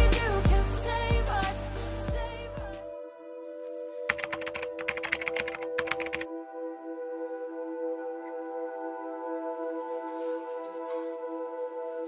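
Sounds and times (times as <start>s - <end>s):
ambient music with long notes: 0.0s - 12.0s
keyboard typing clicks: 4.1s - 6.3s.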